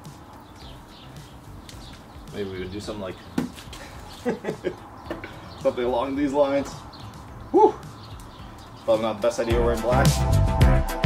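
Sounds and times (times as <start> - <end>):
man chuckling: 3.8 - 5.4.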